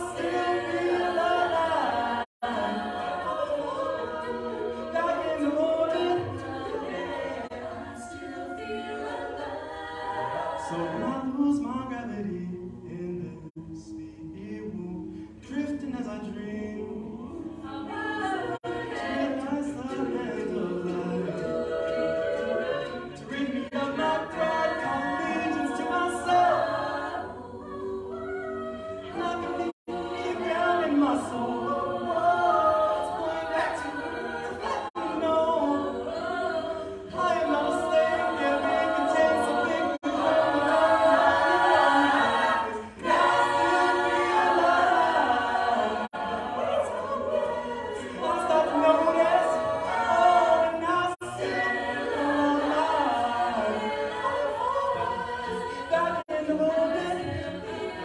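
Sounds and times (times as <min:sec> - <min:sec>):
a cappella group singing: 0:00.0 - 0:58.0.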